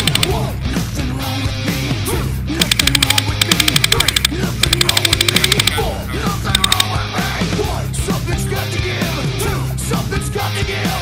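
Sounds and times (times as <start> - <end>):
airsoft gun rapid fire: 0.0 - 0.4, 2.6 - 5.8
heavy rock music: 0.0 - 11.0.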